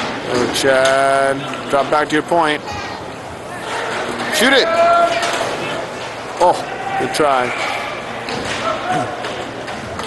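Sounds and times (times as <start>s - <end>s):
roller hockey game noise: 0.0s - 10.0s.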